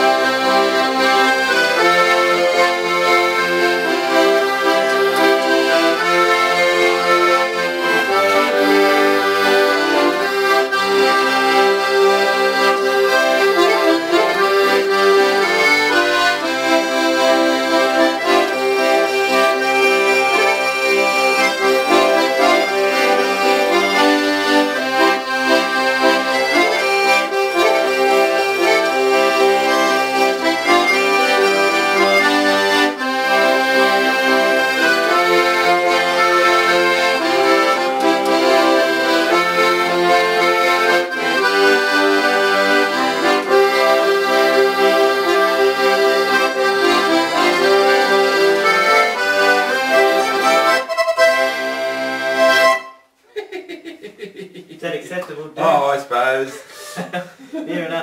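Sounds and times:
accordion duet: 0:00.0 - 0:57.9.

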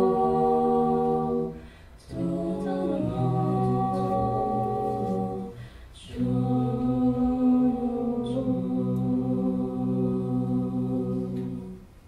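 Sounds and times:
vocal group singing close harmony: 0:00.0 - 0:12.0
singers breathing in: 0:01.6 - 0:02.1, 0:05.5 - 0:06.0.

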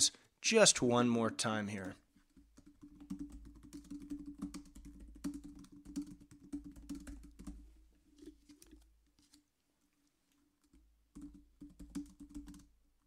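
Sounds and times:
typing on computer keyboard: 0:01.8 - 0:07.6, 0:11.1 - 0:12.7.

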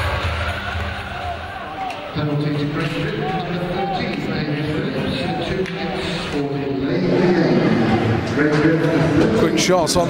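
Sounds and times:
arena music: 0:00.0 - 0:09.6
crowd noise: 0:00.0 - 0:10.0.

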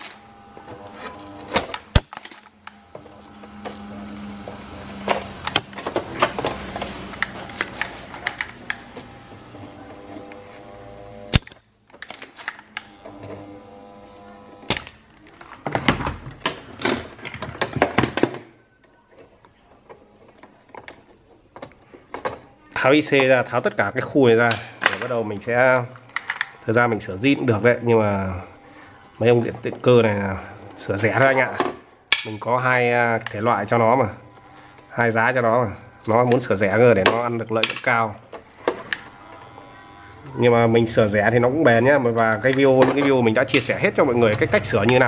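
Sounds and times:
soldering iron buzzing hum: 0:00.0 - 0:11.8, 0:12.6 - 0:15.2, 0:23.8 - 0:31.6, 0:32.5 - 0:45.0
desoldering pump snaps: 0:01.1 - 0:02.9, 0:11.2 - 0:13.0, 0:14.6 - 0:15.3.

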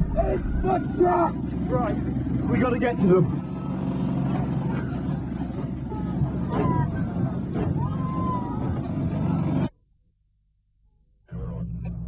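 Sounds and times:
truck engine running: 0:00.0 - 0:09.7.

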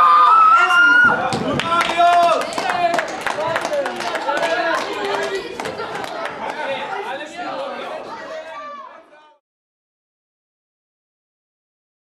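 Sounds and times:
young men chattering: 0:01.2 - 0:09.4
hand claps: 0:01.3 - 0:06.6.

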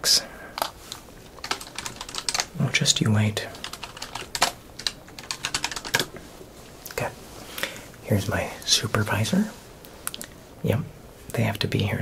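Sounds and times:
keyboard typing: 0:01.4 - 0:02.5, 0:03.5 - 0:06.1.

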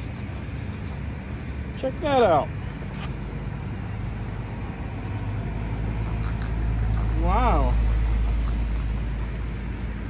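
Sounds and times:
road traffic rumble: 0:00.0 - 0:10.0
vehicle passing: 0:00.0 - 0:10.0.

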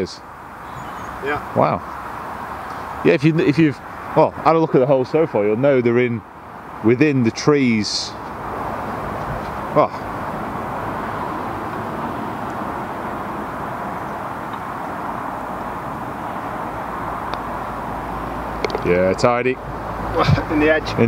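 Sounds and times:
steady outdoor hiss: 0:00.0 - 0:21.0.

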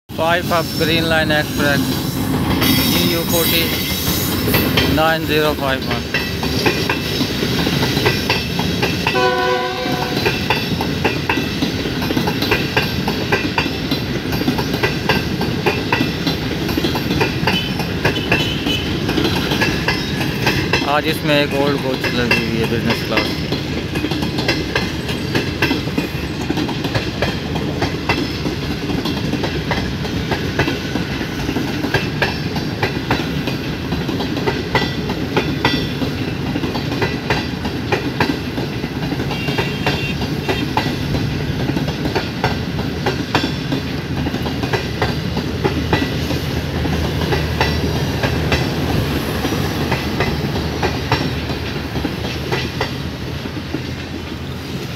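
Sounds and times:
train rumble: 0:00.1 - 0:54.9
train wheels clattering over rail joints: 0:00.4 - 0:54.9.

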